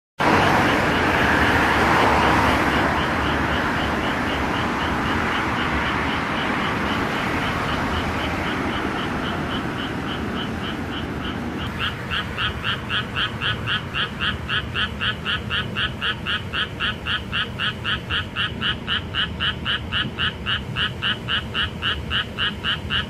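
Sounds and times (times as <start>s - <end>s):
road traffic noise: 0.2s - 23.0s
frog croaking: 0.3s - 23.0s.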